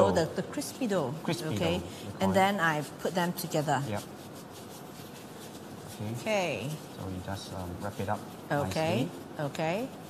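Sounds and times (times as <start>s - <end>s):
plastic gloves rustling on dough: 0.0s - 10.0s.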